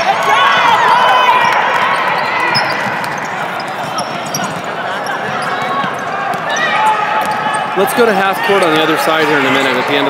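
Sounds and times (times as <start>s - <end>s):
hubbub of voices: 0.0s - 10.0s.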